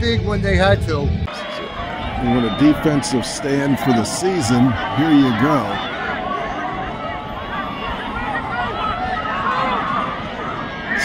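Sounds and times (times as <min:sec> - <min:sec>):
crowd shouts and chatter: 0:00.0 - 0:11.0.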